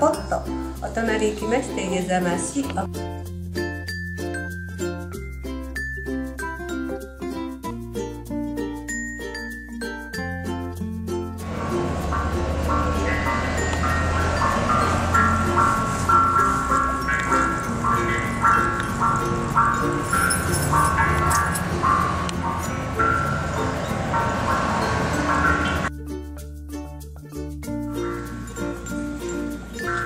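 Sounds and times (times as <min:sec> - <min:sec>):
running water hiss: 0:11.4 - 0:25.9
bell-like water drop notes: 0:11.5 - 0:25.9, 0:28.0 - 0:30.0.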